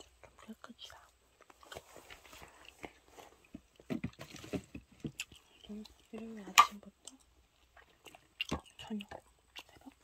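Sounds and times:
close chewing with wet crunches: 0:00.0 - 0:10.0.

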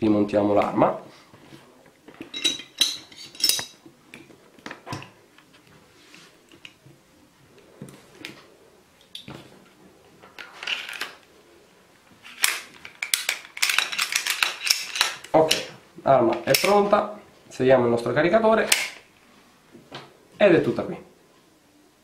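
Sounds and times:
pistol parts clicking and scraping: 0:10.4 - 0:11.2, 0:12.2 - 0:15.7.

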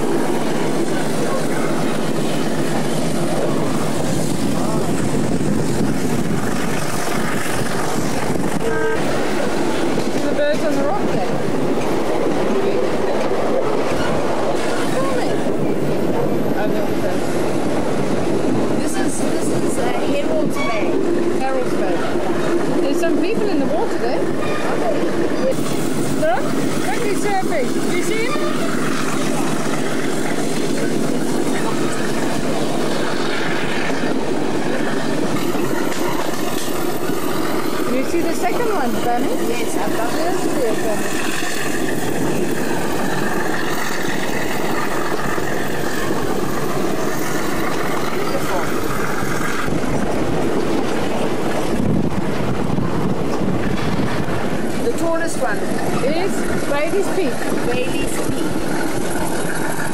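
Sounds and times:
train rumbling and rattling: 0:00.0 - 0:59.9.

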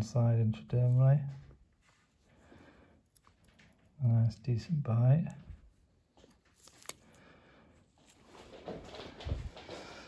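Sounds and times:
soft rustling: 0:00.7 - 0:04.0, 0:07.9 - 0:10.0.

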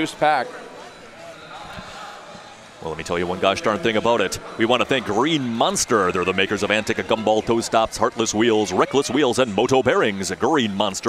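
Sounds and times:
low hall background: 0:00.0 - 0:11.0.

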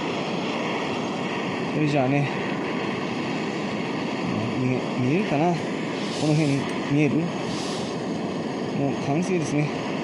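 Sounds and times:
gas torch flame hissing: 0:00.0 - 0:10.0.

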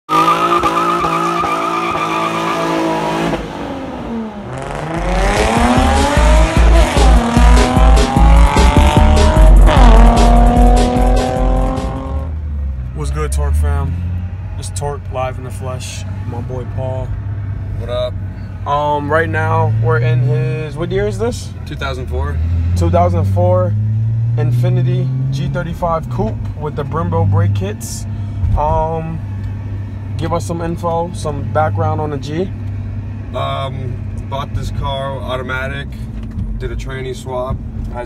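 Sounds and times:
car engine revving: 0:00.1 - 0:38.0
heavy beat: 0:04.9 - 0:12.2.

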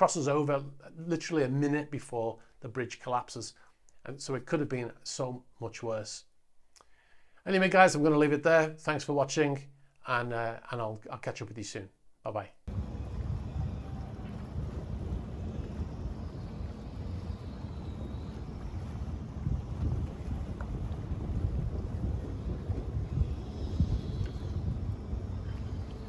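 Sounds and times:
wind buffeting microphone: 0:12.7 - 0:26.0.

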